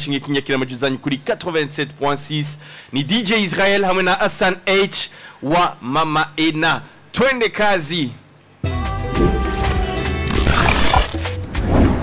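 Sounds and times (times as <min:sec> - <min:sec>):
radio jingle music with deep bass: 0:09.2 - 0:11.4.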